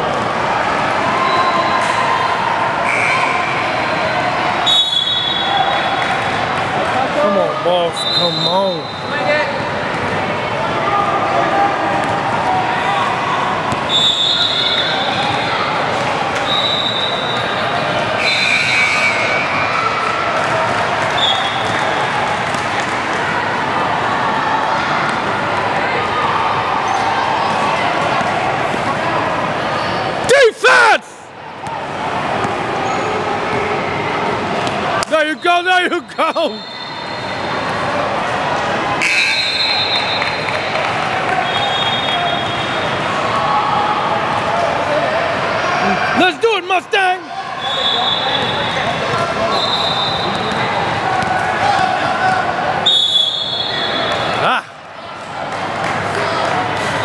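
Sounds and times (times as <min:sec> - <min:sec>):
echoing crowd chatter: 0:00.0 - 0:57.0.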